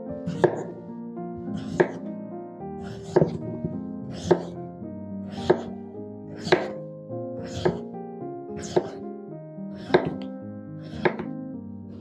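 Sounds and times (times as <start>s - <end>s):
background music: 0.0s - 12.0s
knife cutting on wooden board: 0.3s - 0.8s, 1.4s - 2.1s, 2.8s - 4.6s, 5.3s - 6.8s, 7.4s - 7.9s, 8.6s - 9.0s, 9.8s - 11.3s.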